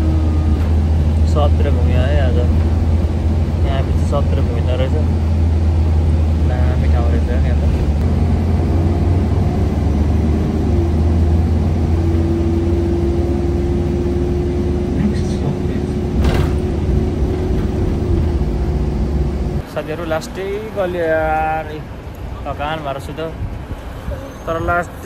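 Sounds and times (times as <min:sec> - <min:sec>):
vehicle rumble from inside cabin: 0:00.0 - 0:25.0.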